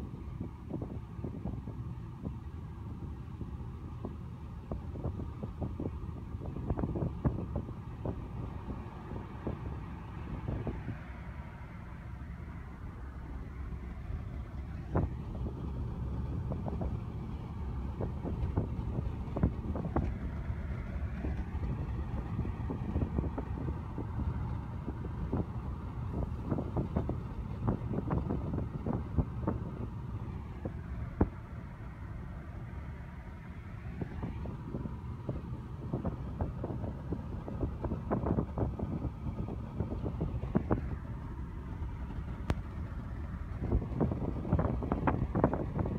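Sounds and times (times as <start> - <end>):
car road rumble: 0.0 - 45.9.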